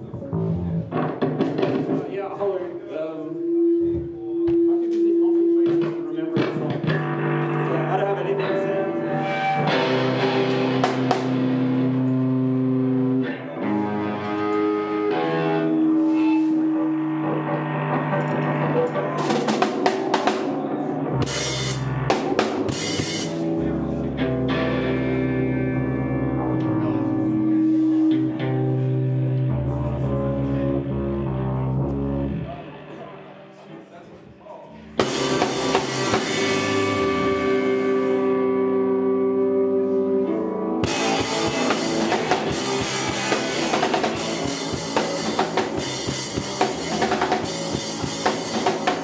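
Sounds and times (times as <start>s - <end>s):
rock band playing: 0.0s - 2.5s, 3.3s - 33.9s, 34.8s - 49.0s.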